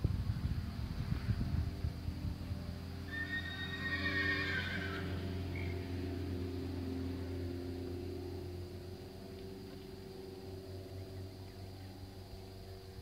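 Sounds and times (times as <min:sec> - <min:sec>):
steady low hum: 0:00.0 - 0:13.0
horse whinnying: 0:03.1 - 0:05.7.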